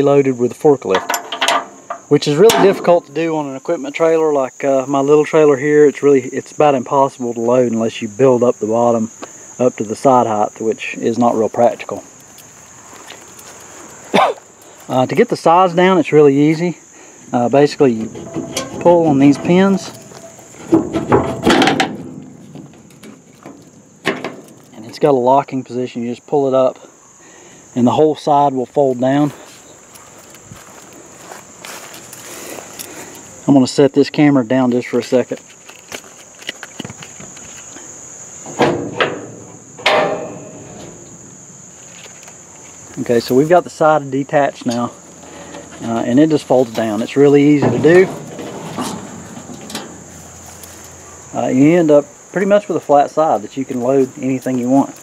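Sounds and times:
crickets chirring: 0.0s - 55.0s
ringing metal clanks: 0.9s - 3.0s, 17.7s - 24.7s, 38.6s - 41.4s, 47.4s - 50.3s
person coughing: 14.1s - 14.4s.

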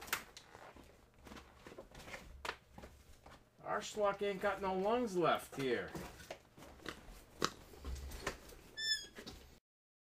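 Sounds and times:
short high-pitched squeak: 8.8s - 9.2s.

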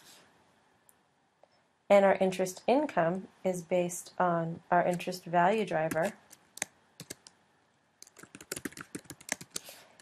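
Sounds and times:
computer keyboard typing: 5.8s - 7.4s, 8.0s - 10.0s.

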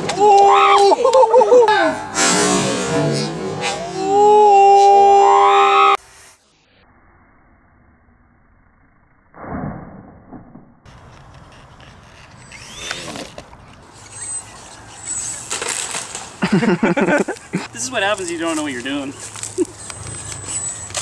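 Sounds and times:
sudden loud noise: 2.0s - 4.4s, 9.3s - 10.8s
electric motor whine: 12.3s - 15.7s.

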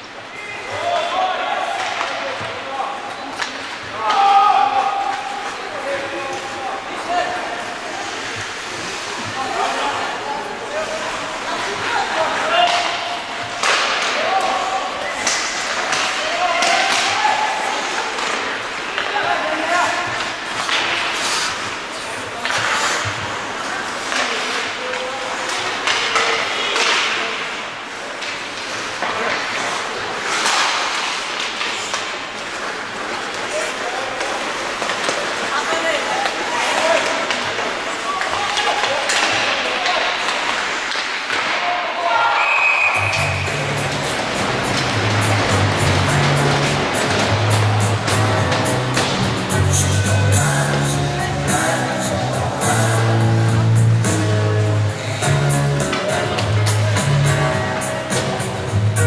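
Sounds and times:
arena noise: 0.0s - 59.0s
puck and stick hits: 0.6s - 59.0s
people shouting: 3.9s - 5.5s, 16.0s - 18.2s
music: 43.0s - 59.0s.

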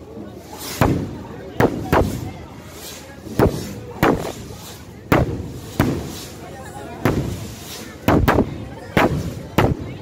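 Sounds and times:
fireworks exploding overhead: 0.4s - 10.0s.

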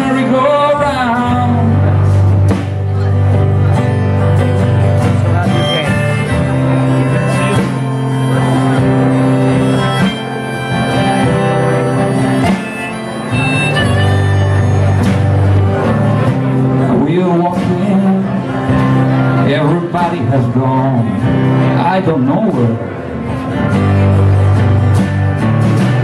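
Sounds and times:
acoustic guitar strumming: 0.0s - 26.0s
harmonica playing: 3.1s - 16.8s.

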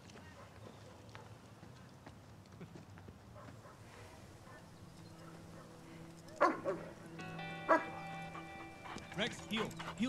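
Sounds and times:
dog barking: 0.3s - 1.4s, 3.3s - 7.0s, 7.6s - 9.1s
film score sustained notes: 4.9s - 10.0s.

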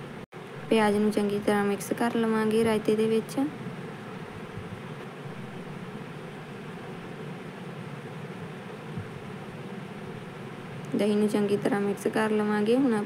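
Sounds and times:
steady background noise: 0.0s - 13.0s.

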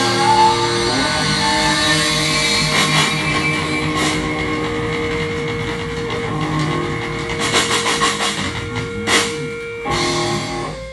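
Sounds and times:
distorted electric guitar chord: 0.0s - 10.9s
drum and cymbal hits: 0.0s - 10.9s.

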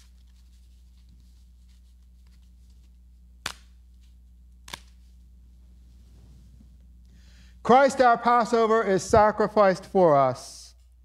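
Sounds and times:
wafer cracking: 4.6s - 5.0s.

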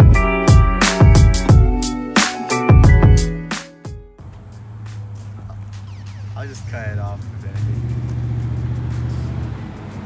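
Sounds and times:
vehicle engine rumbling: 4.2s - 10.0s.

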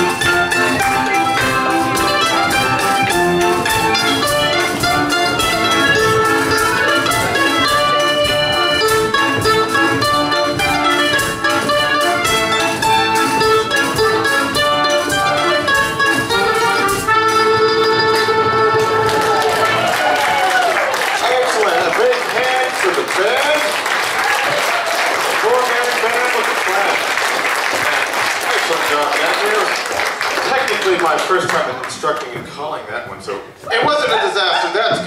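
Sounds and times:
lagerphone steady beat: 0.0s - 19.1s
folk dance band playing: 0.0s - 35.0s.

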